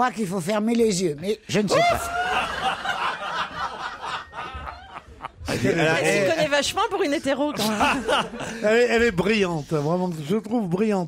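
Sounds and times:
people laughing and snickering: 0:01.7 - 0:06.4, 0:07.3 - 0:08.9.

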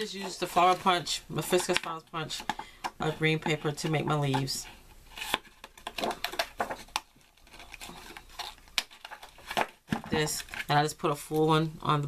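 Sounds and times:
paper rustling: 0:03.5 - 0:10.9.

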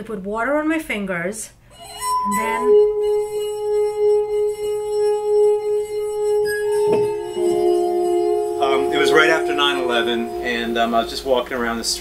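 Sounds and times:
glass harp ringing tones: 0:01.8 - 0:12.0.

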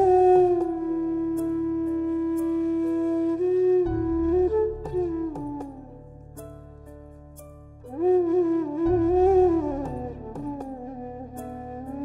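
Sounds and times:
classical instrumental melody: 0:00.0 - 0:12.0.

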